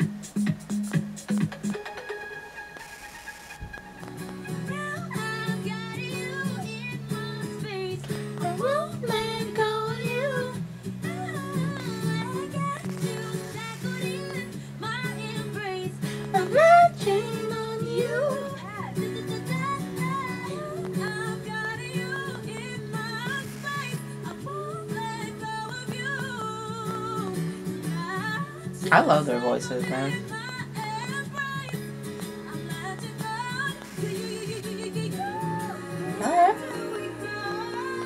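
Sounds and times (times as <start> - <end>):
female vocal group singing: 4.7 - 31.8, 32.5 - 38.0.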